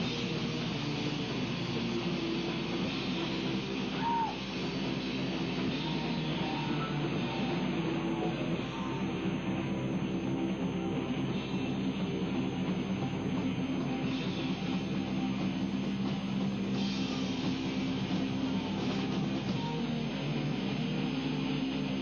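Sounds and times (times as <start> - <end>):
rock music with guitar: 0.0 - 22.0.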